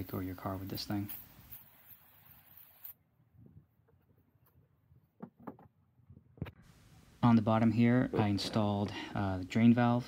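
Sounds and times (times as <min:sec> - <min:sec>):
faint hiss: 0:00.0 - 0:03.6, 0:06.5 - 0:10.0.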